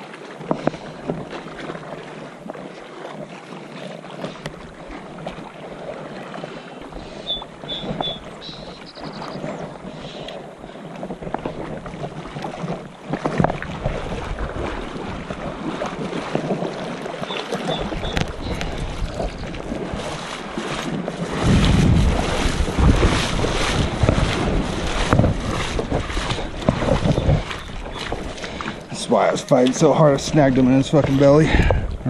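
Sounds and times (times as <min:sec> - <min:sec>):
river current rushing and splashing: 0:00.0 - 0:32.0
wind buffeting microphone: 0:06.9 - 0:32.0.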